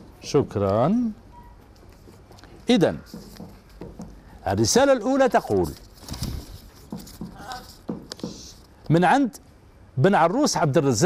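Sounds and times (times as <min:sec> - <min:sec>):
soft bumps of hands on paper: 0:03.0 - 0:04.3, 0:06.0 - 0:08.5
paper rustling and crinkling: 0:05.2 - 0:07.9.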